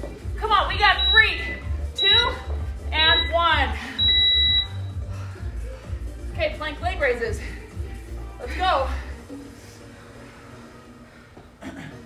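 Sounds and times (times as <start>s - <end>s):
high electronic timer beep: 0.8s - 5.1s.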